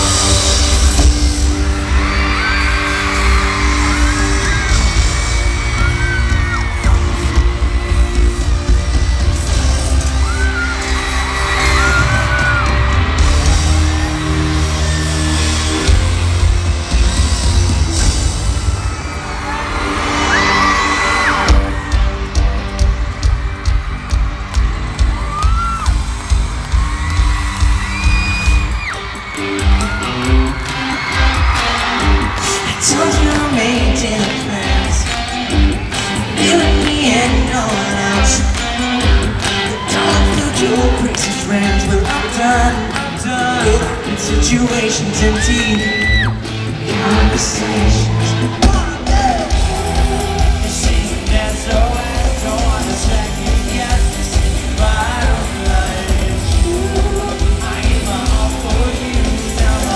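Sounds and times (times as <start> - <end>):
crowd screaming: 0.0 - 59.9
live band music over speakers: 0.0 - 59.9.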